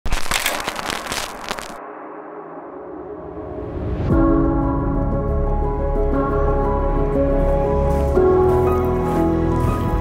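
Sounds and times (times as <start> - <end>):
crackling with sharp pops: 0.1 - 1.8.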